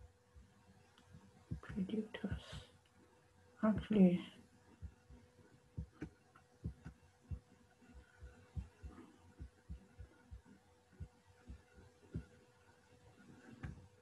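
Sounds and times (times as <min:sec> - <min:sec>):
faint steady hum: 0:00.0 - 0:14.0
faint low thuds: 0:01.4 - 0:02.6, 0:04.7 - 0:12.4, 0:13.3 - 0:14.0.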